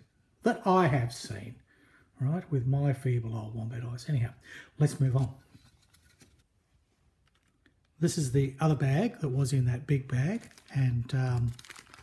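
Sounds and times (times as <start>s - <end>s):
plastic bag crinkling: 10.1s - 12.0s.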